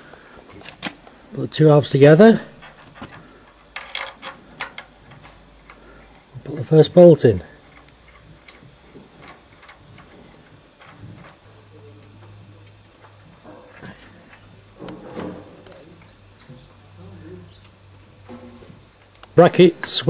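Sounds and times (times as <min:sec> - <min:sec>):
low steady hum: 0:00.0 - 0:20.0
metallic clicks of bolts: 0:03.7 - 0:04.9.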